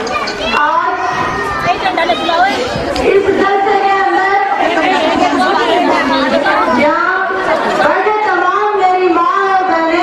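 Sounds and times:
crowd chatter: 0.0 - 10.0
woman speaking over microphone: 0.6 - 10.0.

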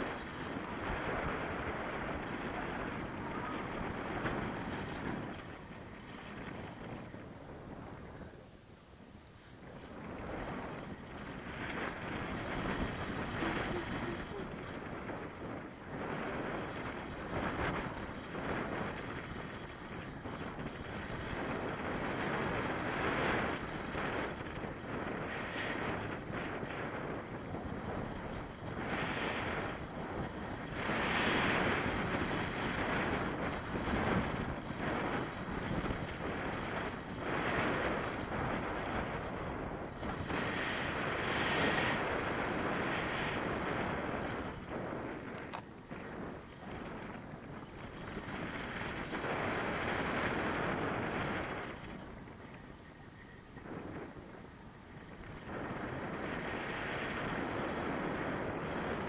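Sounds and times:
wind roaring over microphone: 0.0 - 59.0.

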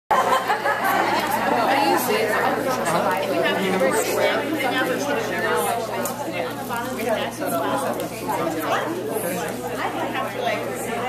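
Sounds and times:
overlapping chatter of people: 0.1 - 11.0.

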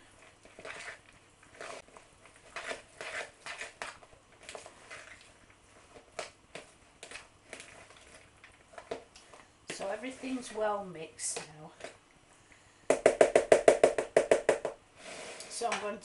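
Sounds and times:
hand squishing rice mixture: 0.0 - 12.0.

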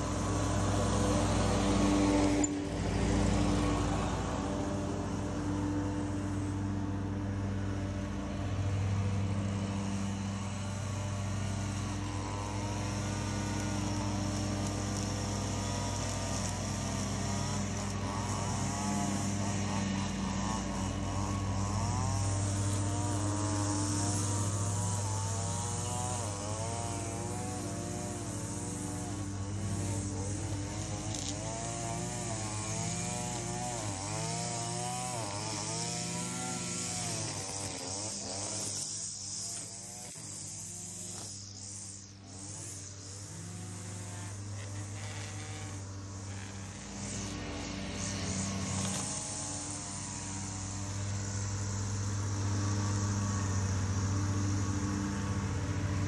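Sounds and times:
mower engine running: 0.0 - 56.0
string trimmer revving: 0.0 - 56.0.

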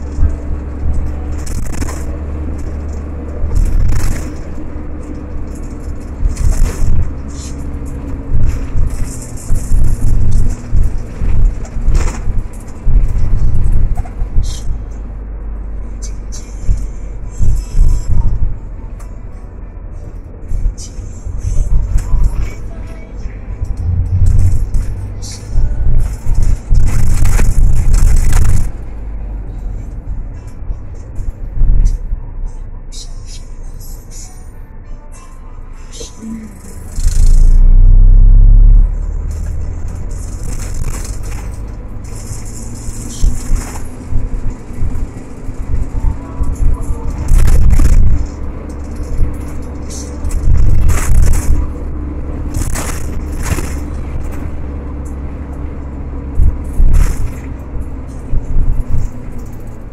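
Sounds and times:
low-pitched bumps and buffeting: 0.0 - 34.0, 35.8 - 59.9
car ride rumble: 0.0 - 59.9
music: 30.1 - 37.3.

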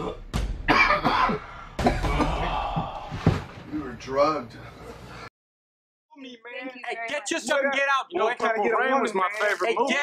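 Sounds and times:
man coughing harshly: 0.0 - 1.6.

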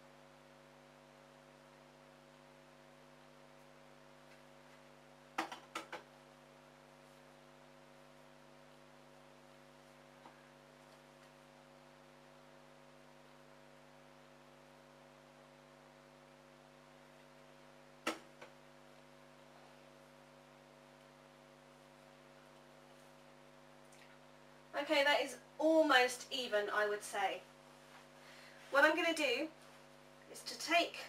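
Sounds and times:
steady electrical hum: 0.0 - 31.0.

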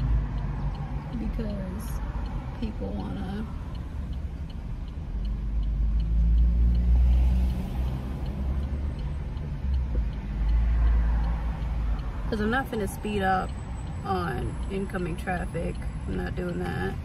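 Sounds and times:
engine and road rumble: 0.0 - 17.0
turn indicator ticking: 0.0 - 17.0.

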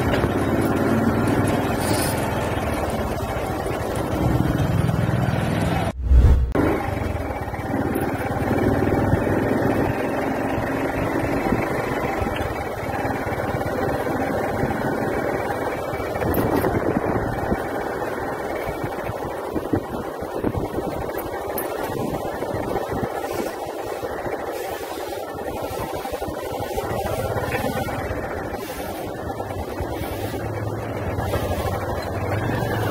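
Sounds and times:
vehicle engine and road noise: 0.0 - 32.9.

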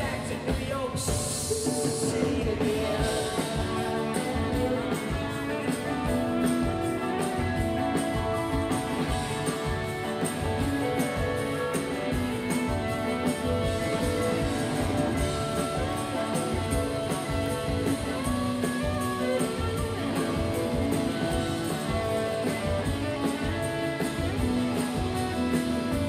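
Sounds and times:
drum kit steady beat: 0.0 - 26.0
strummed electric and acoustic guitars: 0.0 - 26.0.

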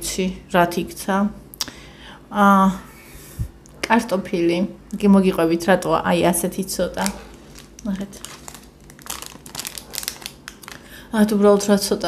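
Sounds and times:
woman's voice: 0.0 - 1.4, 2.3 - 2.9, 3.8 - 7.2, 7.8 - 8.3, 11.1 - 12.0
plastic food wrapper crinkling: 6.8 - 11.7.

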